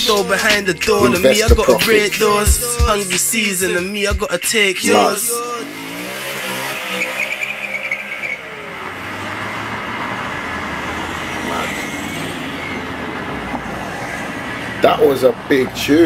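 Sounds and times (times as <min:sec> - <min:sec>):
road noise: 0:00.0 - 0:16.0
car engine: 0:03.6 - 0:16.0.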